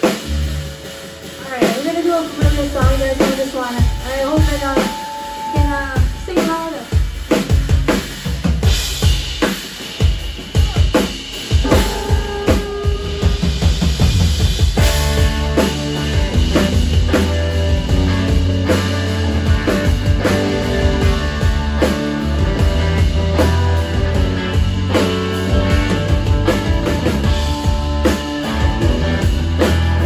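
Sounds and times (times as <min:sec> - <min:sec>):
rock band playing: 0:00.0 - 0:30.0
drum hits: 0:01.5 - 0:30.0
electric guitar notes: 0:11.5 - 0:13.7, 0:14.8 - 0:30.0.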